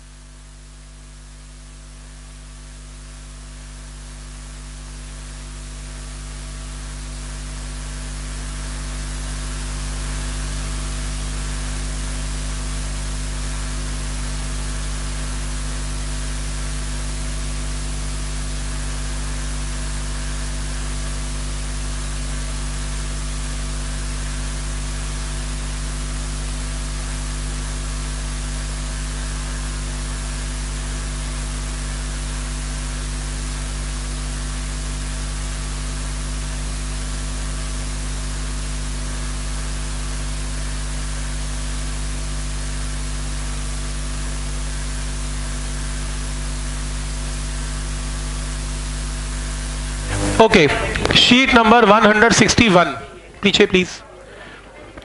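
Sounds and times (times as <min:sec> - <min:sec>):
steady electrical hum: 0:00.0 - 0:42.7, 0:43.3 - 0:55.0.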